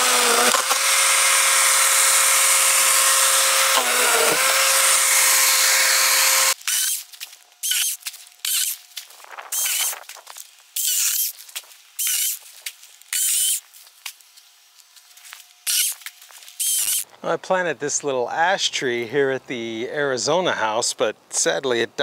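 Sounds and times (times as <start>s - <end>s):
electric chainsaw whine: 0.0s - 13.9s, 14.6s - 17.1s
dry palm fronds rustling: 6.6s - 17.0s.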